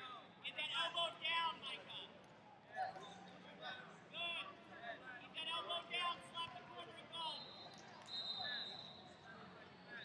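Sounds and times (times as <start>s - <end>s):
scattered voices in a hall: 0.0s - 10.0s.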